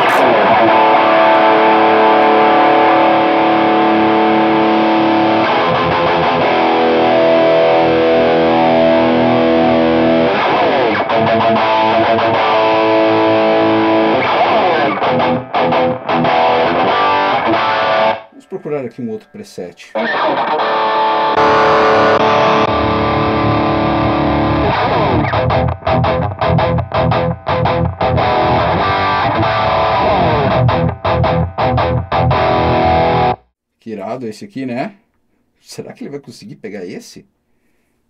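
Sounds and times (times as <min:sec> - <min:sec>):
distorted electric guitar chords: 0:00.0 - 0:33.5.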